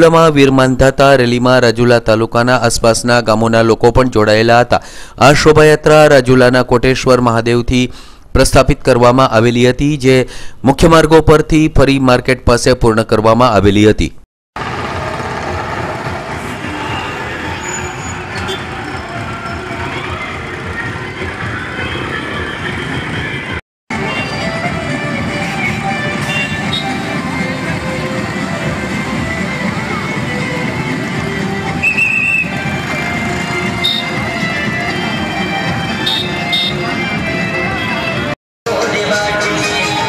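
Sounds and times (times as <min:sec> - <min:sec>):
motor vehicles running: 0:14.6 - 0:38.4
indistinct crowd voices: 0:15.8 - 0:23.4, 0:26.8 - 0:40.0
music: 0:20.0 - 0:40.0.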